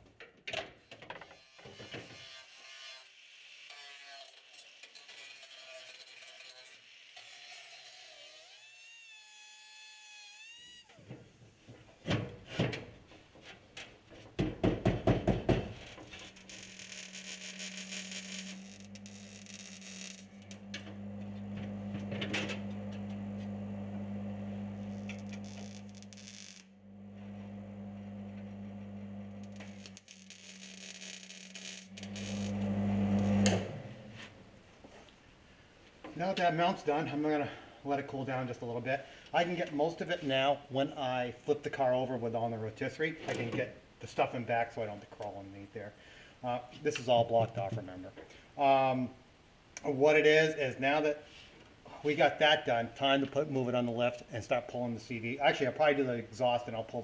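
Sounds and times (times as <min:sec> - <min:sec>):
arc welder crackling and humming: 0:15.8 - 0:34.5.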